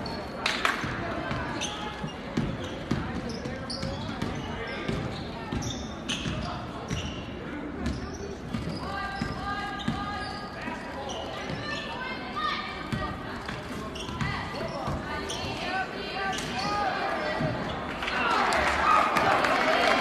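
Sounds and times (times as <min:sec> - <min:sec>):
chatter and shouts: 0:00.0 - 0:20.0.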